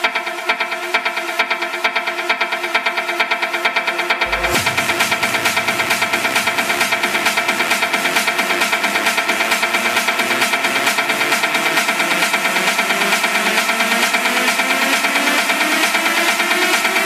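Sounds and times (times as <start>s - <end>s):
electronic dance music: 0.0s - 17.0s.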